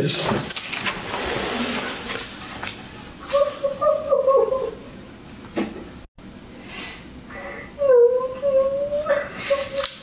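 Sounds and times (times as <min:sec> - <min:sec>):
woman crying: 0:03.3 - 0:04.9, 0:07.7 - 0:09.9.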